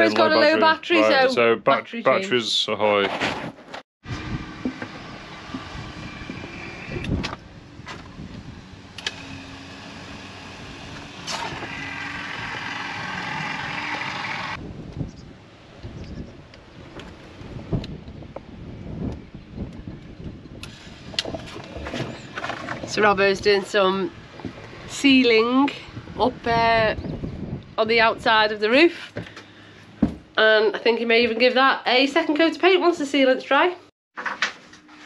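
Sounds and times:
caulking gun motor running: 0:09.0 - 0:14.6.

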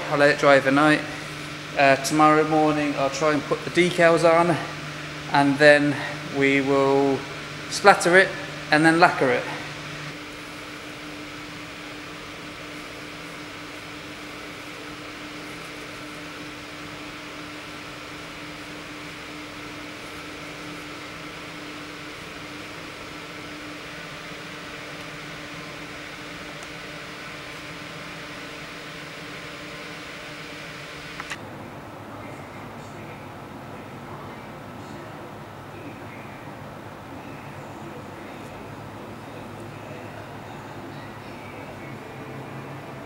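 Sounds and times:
mechanical hum and hiss: 0:00.0 - 0:43.0.

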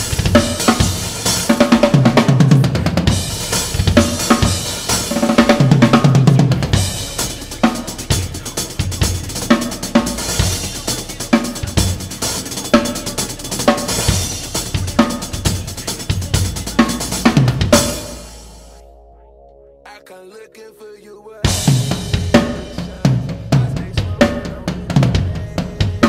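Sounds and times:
acoustic drum kit beat: 0:00.0 - 0:18.7, 0:21.4 - 0:26.0.

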